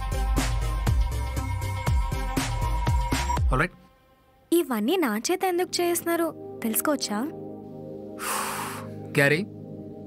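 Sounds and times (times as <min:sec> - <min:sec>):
film music: 0:00.0 - 0:10.0.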